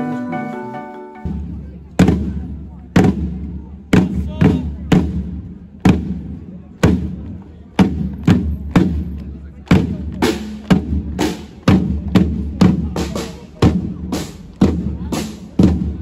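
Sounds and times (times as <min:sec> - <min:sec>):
field drums beating: 0:01.2 - 0:16.0.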